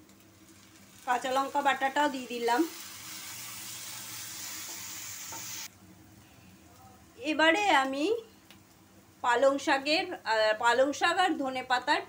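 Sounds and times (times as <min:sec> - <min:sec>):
paste sizzling in hot oil: 0:00.2 - 0:05.7.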